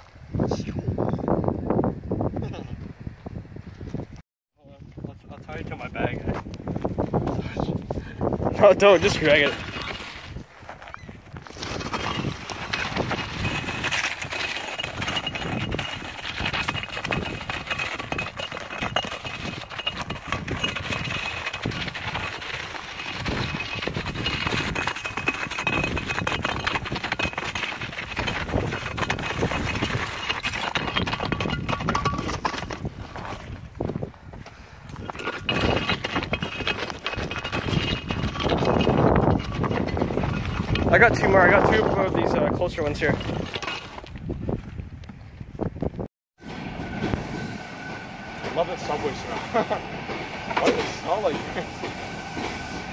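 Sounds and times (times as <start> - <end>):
cinder block scraping over gravel: 8.5 - 44.3, 50.6 - 51.9.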